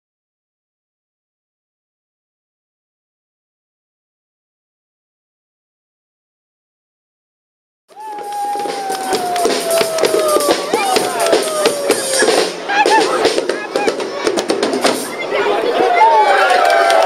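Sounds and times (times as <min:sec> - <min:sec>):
live band music: 0:07.9 - 0:15.5
busy drumming: 0:07.9 - 0:15.9.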